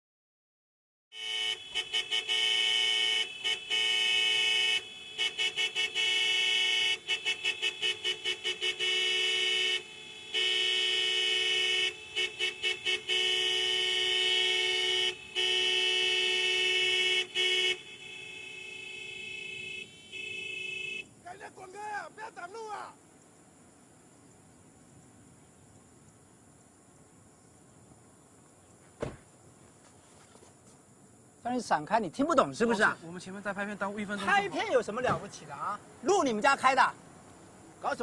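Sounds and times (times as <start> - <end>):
car horn honking: 1.1 - 22.8.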